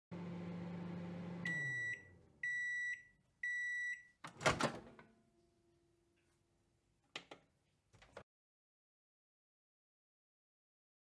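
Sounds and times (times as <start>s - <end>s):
microwave oven humming: 0.1s - 3.6s
microwave beeps: 0.8s - 4.2s.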